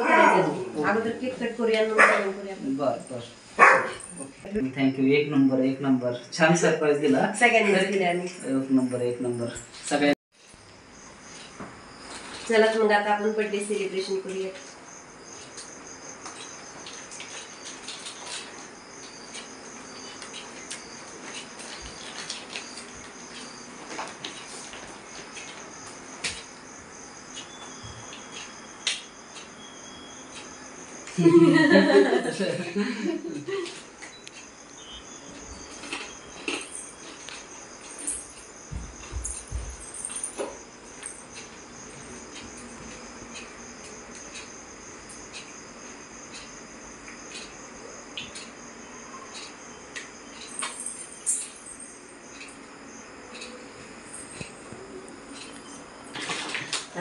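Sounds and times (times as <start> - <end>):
insects chirring: 0.0 - 57.0
dog barking: 2.0 - 2.4, 3.6 - 4.0.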